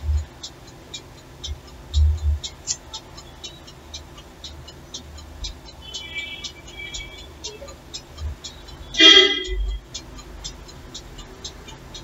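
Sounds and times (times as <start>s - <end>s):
short horn-like toot: 9.0s - 9.7s.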